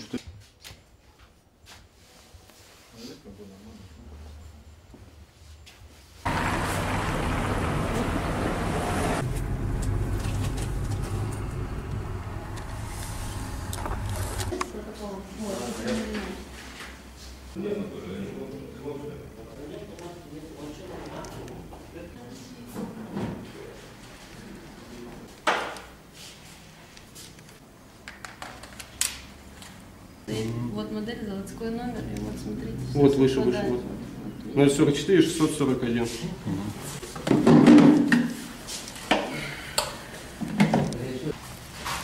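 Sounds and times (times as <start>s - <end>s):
low room noise: 0.0s - 42.0s
low traffic rumble: 6.2s - 15.4s.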